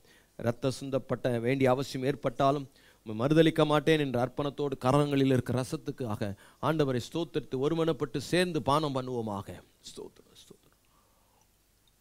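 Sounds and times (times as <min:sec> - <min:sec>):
breath into microphone: 0:00.0 - 0:00.4, 0:02.7 - 0:03.1, 0:06.4 - 0:06.6, 0:10.8 - 0:11.6.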